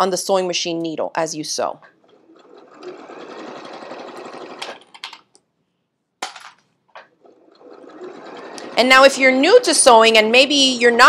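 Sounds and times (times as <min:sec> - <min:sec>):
sewing machine stitching: 0:01.8 - 0:05.3, 0:07.0 - 0:09.7.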